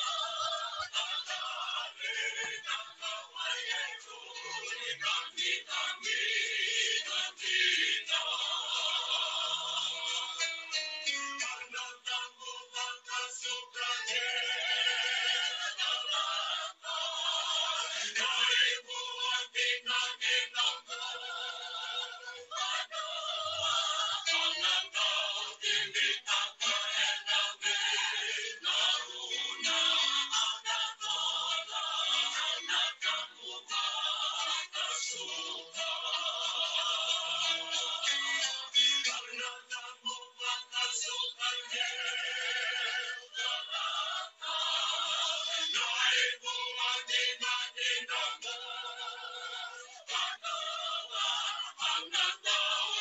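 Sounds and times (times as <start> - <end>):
song with singing: 0.0 - 53.0.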